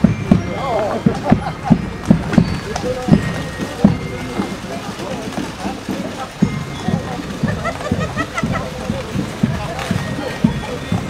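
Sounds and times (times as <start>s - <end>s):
horse hooves clip-clopping on pavement: 0.0s - 11.0s.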